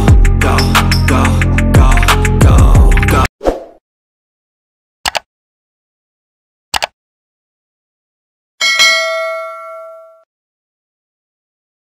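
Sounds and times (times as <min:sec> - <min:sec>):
bright metallic ding: 0:08.6 - 0:10.3.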